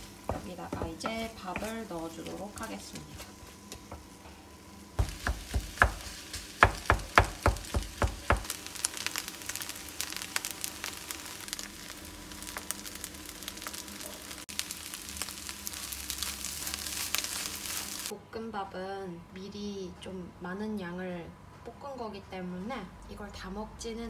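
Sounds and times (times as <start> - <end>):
rice sizzling and crackling: 0.0 - 18.1.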